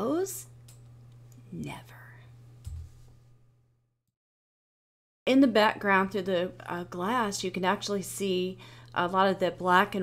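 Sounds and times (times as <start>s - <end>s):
low electrical hum: 0.0s - 3.9s, 5.3s - 10.0s.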